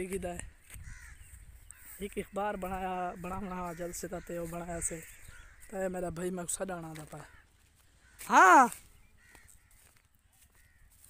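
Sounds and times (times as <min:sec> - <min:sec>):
wind rumble on microphone: 0:00.0 - 0:01.9
man calling out: 0:08.2 - 0:08.8.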